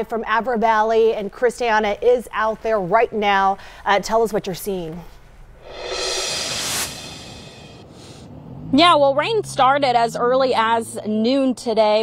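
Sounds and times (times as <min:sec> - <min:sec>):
whoosh: 0:05.6 - 0:08.4.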